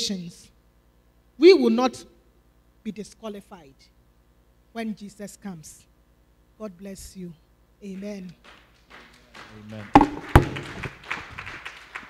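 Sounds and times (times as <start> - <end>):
light scattered applause: 8.4 - 12.0
loud knocks: 10.0 - 11.0.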